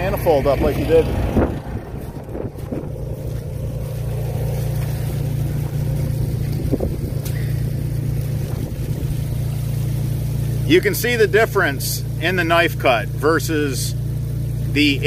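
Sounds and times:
motor droning: 0:00.0 - 0:15.0.

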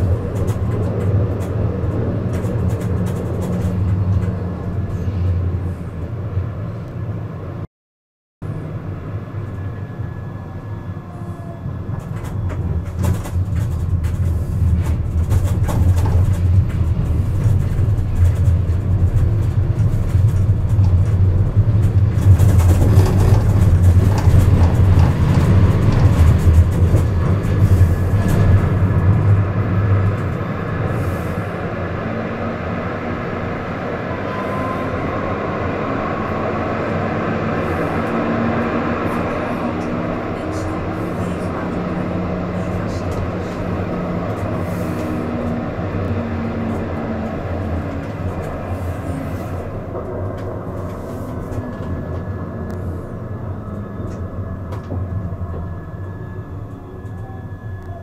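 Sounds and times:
tram wheels rumbling on track: 0:00.0 - 0:07.6, 0:08.4 - 0:58.0.

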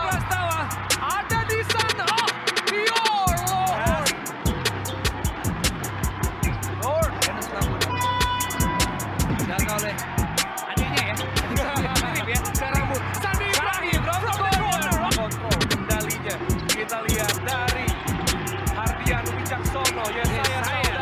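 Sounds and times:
hip-hop music with fast beat: 0:00.0 - 0:21.0.

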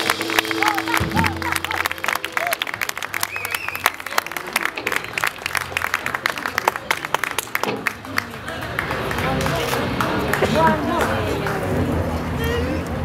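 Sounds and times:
audience clapping: 0:00.0 - 0:12.3.

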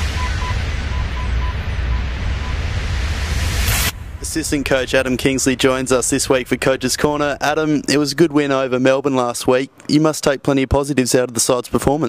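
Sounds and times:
deep steady rumble: 0:00.0 - 0:09.4
hiss: 0:02.8 - 0:04.0.

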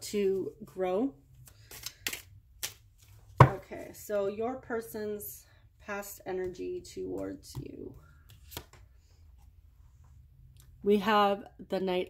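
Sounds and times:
woman speaking: 0:00.0 - 0:01.2, 0:03.4 - 0:08.0, 0:10.8 - 0:12.0.

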